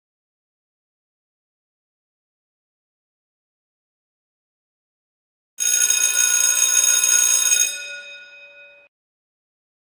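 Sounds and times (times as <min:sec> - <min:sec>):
electric bell ringing: 0:05.6 - 0:08.9.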